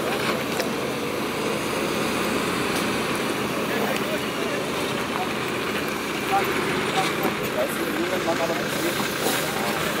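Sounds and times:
diesel truck engine running: 0:00.0 - 0:10.0
chatter of many voices: 0:03.3 - 0:10.0.

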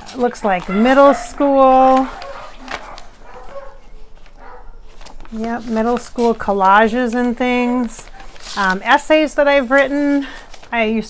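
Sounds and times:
paper rustling: 0:00.0 - 0:11.0.

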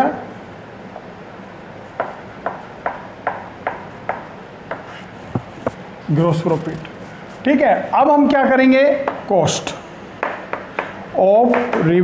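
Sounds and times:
chalk tapping on chalkboard: 0:01.9 - 0:05.8, 0:10.2 - 0:11.9.

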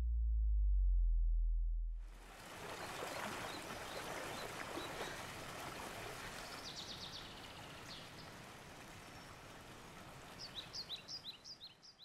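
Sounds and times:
water lapping around swimmer: 0:02.2 - 0:11.2.

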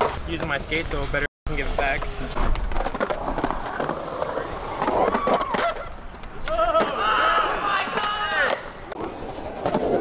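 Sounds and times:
skateboard wheels rolling on concrete: 0:00.0 - 0:10.0.

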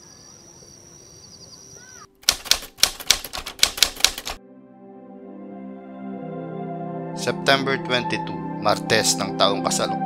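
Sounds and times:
chirps: 0:00.0 - 0:02.1
typewriter keys clacking: 0:02.2 - 0:04.4
soft ambient music: 0:04.4 - 0:10.0.

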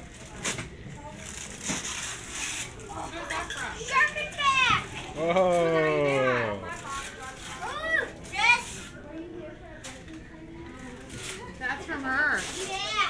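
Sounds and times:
children chattering: 0:02.5 - 0:13.0.

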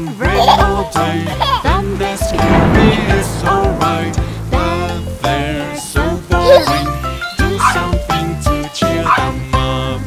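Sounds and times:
upbeat children's song: 0:00.0 - 0:10.0
cartoon puppy barking: 0:09.0 - 0:09.3.

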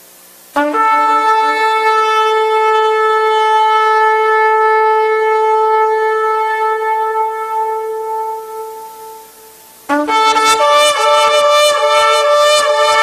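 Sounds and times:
ram's horn long steady note: 0:00.0 - 0:13.0.

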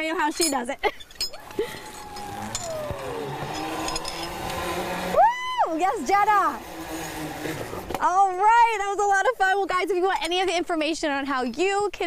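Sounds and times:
zipline pulley whirring on cable: 0:01.3 - 0:08.5
woman whooping: 0:01.4 - 0:03.4, 0:05.1 - 0:06.1.

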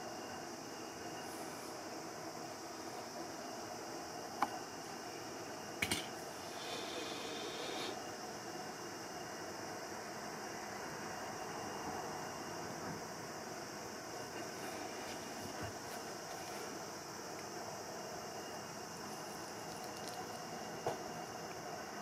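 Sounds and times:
room tone hiss and hum: 0:00.0 - 0:22.0.

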